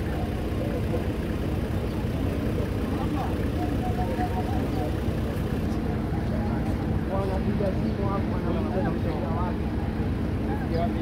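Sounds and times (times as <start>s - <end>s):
engine idling: 0.0s - 11.0s
faint voices murmuring: 0.0s - 11.0s.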